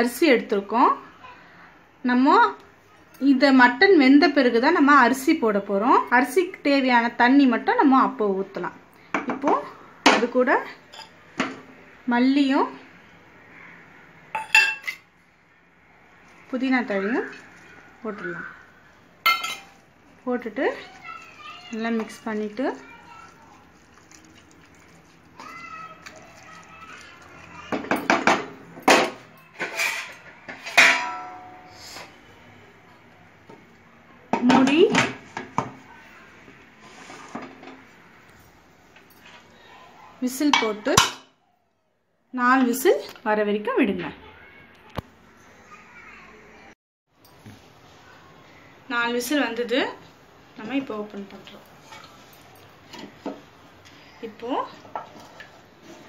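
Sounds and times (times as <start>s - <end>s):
metal kitchenware clinking: 10.9s - 11.6s, 14.4s - 15.1s, 19.2s - 19.8s, 27.7s - 32.2s.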